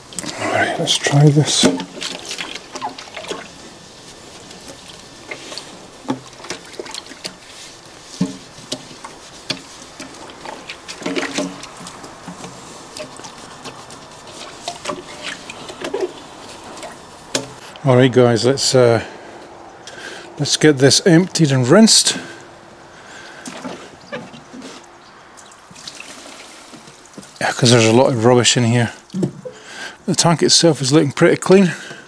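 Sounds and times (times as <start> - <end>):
water sloshing: 0.0 - 17.8, 22.4 - 27.8
sponge scrubbing glass: 0.8 - 17.6.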